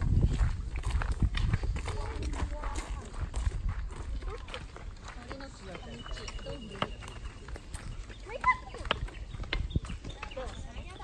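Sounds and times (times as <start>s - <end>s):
footsteps on pavement: 0.0s - 11.0s
walking sticks tapping: 0.0s - 11.0s.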